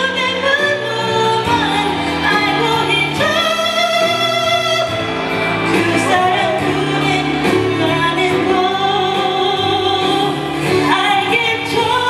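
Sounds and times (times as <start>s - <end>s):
instrumental accompaniment: 0.0s - 12.0s
woman singing into a microphone: 0.0s - 12.0s.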